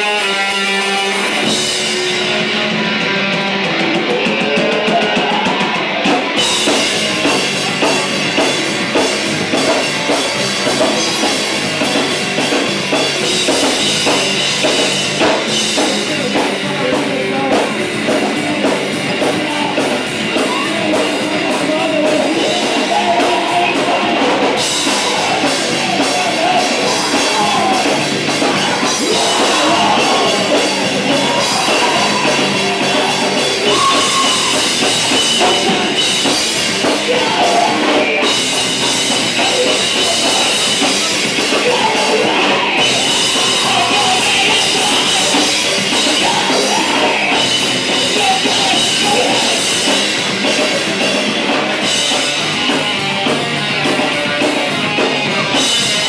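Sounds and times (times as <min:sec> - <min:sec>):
drum kit: 0:00.0 - 0:56.0
guitar: 0:00.0 - 0:56.0
live rock band: 0:00.0 - 0:56.0.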